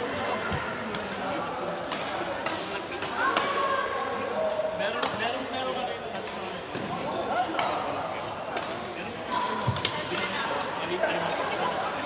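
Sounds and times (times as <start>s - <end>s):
rackets hitting shuttlecock: 8.5s - 11.5s.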